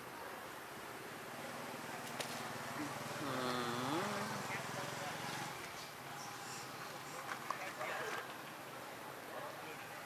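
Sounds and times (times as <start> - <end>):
person's wordless voice: 2.8 - 4.5.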